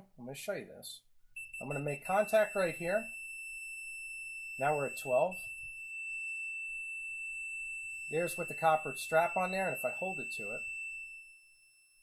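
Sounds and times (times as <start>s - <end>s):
multimeter continuity beep: 1.4s - 12.0s.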